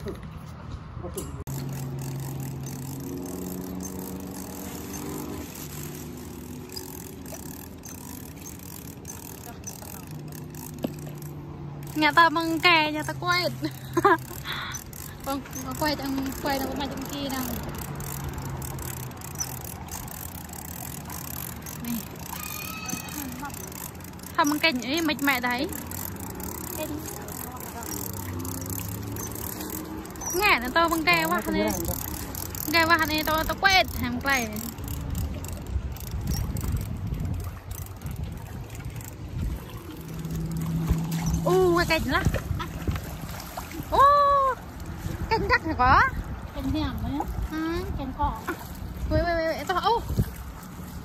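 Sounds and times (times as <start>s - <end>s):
traffic engine hum: 0.0s - 51.0s.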